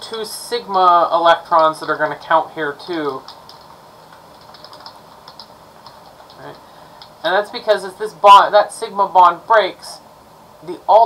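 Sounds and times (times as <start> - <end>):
typing on computer keyboard: 3.1 - 7.1.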